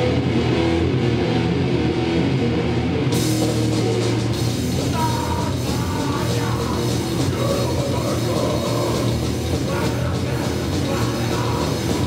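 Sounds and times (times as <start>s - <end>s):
bass guitar: 0.0s - 12.0s
distorted electric guitars: 0.0s - 12.0s
drum kit: 0.0s - 12.0s.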